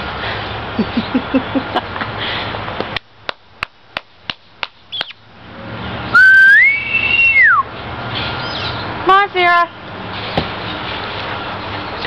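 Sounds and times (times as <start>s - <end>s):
person whistling: 6.2s - 7.7s.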